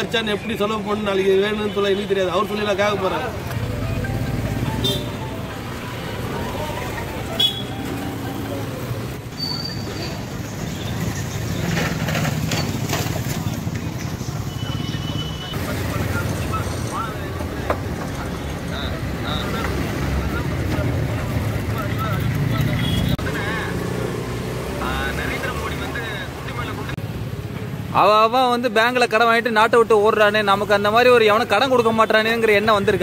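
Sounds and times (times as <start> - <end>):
street traffic rumble: 0.0 - 33.0
faint voices: 5.2 - 10.4.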